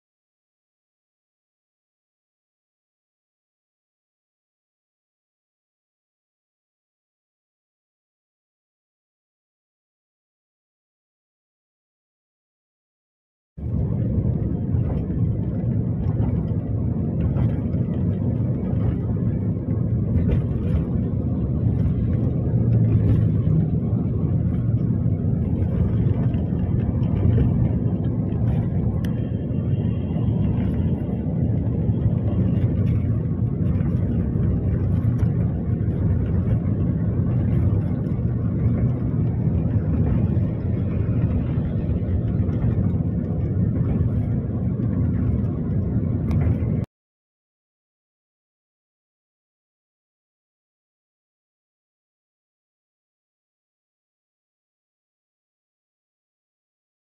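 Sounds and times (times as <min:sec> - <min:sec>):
car cabin road rumble: 0:13.6 - 0:46.9.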